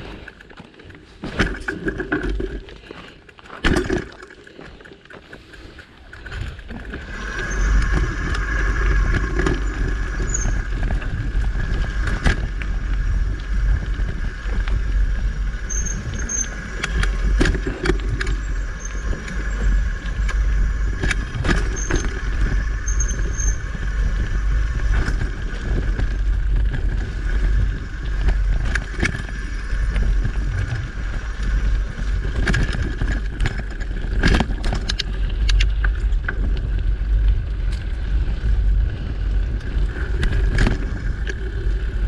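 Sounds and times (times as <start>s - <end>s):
bike knocking and rattling: 0.0s - 42.0s
bike tyres rumbling on dirt: 0.0s - 42.0s
wind on microphone: 6.0s - 42.0s.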